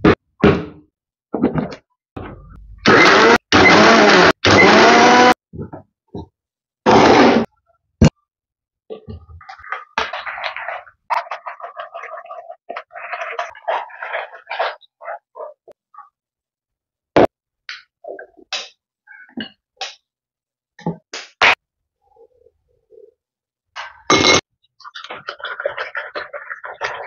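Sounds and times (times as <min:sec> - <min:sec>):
electric blender pulsing: 0:02.9 - 0:05.4.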